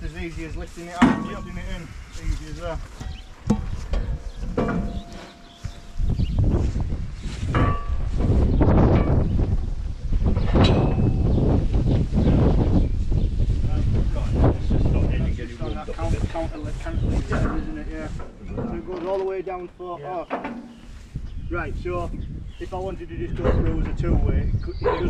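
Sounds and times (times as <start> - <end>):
wind rumble on microphone: 0.0 - 19.5, 20.3 - 25.0
sharp metal knocks: 3.0 - 6.4, 7.5 - 9.6, 10.4 - 11.4, 20.2 - 20.9.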